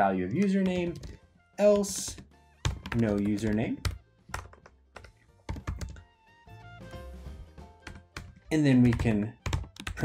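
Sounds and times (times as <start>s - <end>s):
soft background music: 0.0s - 10.0s
typing on computer keyboard: 2.0s - 6.0s, 7.8s - 10.0s.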